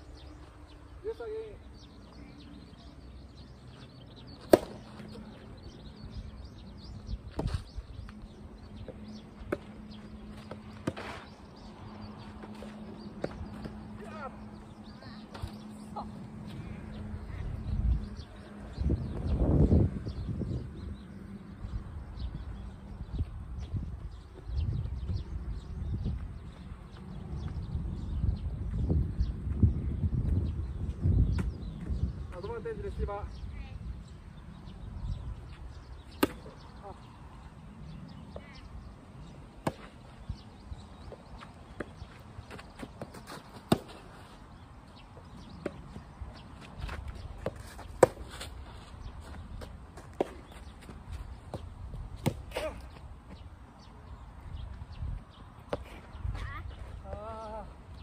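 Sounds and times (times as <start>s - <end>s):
racket striking tennis ball: 4.4s - 5.0s, 36.2s - 36.6s, 39.6s - 40.0s, 42.9s - 44.0s, 47.4s - 48.5s, 52.2s - 52.8s
tennis ball hit: 4.4s - 5.1s, 36.1s - 36.6s, 43.0s - 44.0s
footsteps on clay court: 7.3s - 16.6s, 39.6s - 53.6s, 54.7s - 57.5s
person calling out: 57.0s - 57.8s.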